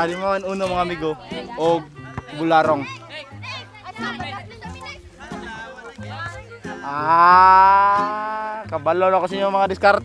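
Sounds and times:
background music with bass line: 0.0s - 10.0s
children shouting excitedly: 2.7s - 5.4s, 6.1s - 8.6s.

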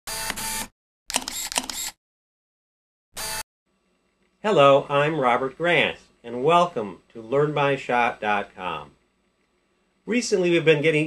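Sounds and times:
camera shutter clicks: 0.2s - 2.0s.

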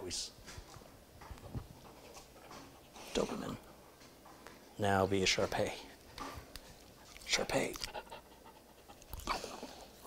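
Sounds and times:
dog panting: 1.3s - 4.0s, 5.4s - 10.0s.

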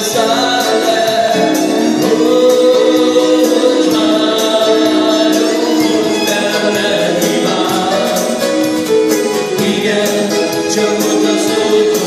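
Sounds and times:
acoustic guitar: 0.0s - 12.0s
electric bass: 0.0s - 12.0s
keyboard: 0.0s - 12.0s
person singing: 0.0s - 12.0s
steady drum beat: 0.0s - 12.0s
violin: 0.0s - 12.0s.

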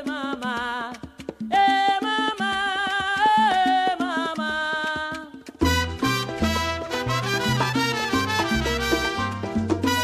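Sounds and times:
instrumental salsa dance music: 0.0s - 10.0s.

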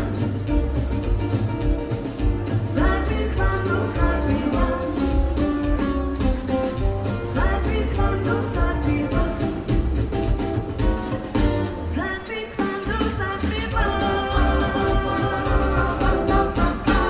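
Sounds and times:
woman singing: 0.0s - 1.8s, 2.4s - 10.2s, 11.6s - 17.0s
upright bass: 0.0s - 12.1s, 12.8s - 17.0s
drums: 0.0s - 17.0s
electric guitar: 0.0s - 17.0s.

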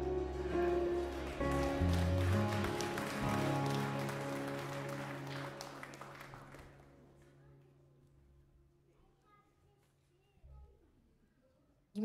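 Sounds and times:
worship band playing: 0.0s - 6.8s
congregation clapping: 0.0s - 7.4s.

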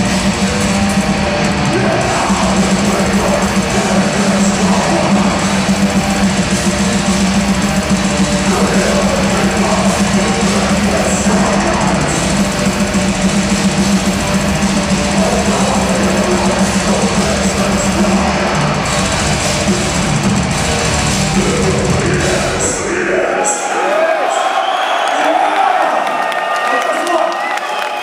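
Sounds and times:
heavy metal band playing live: 0.0s - 23.8s.

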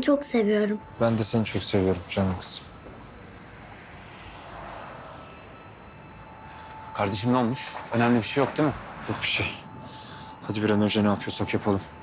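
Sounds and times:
city background rumble: 0.0s - 12.0s.

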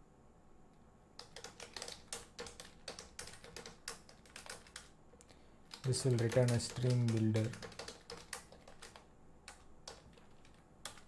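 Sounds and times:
computer keyboard typing: 1.2s - 11.0s.

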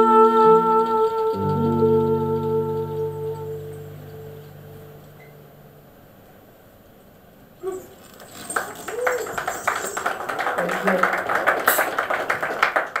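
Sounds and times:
audience clapping and cheering: 7.8s - 13.0s.

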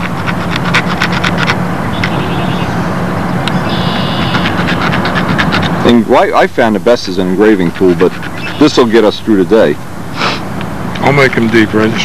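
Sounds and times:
high whines: 0.0s - 12.0s
low hum: 0.0s - 12.0s.

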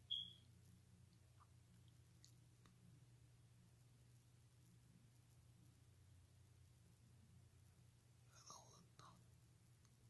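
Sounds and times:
low steady hum: 0.0s - 10.0s
person whispering: 8.3s - 9.2s.

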